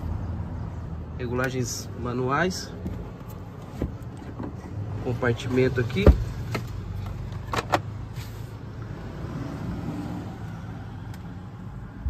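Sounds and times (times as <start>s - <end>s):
thump in car interior: 6.0s - 6.6s.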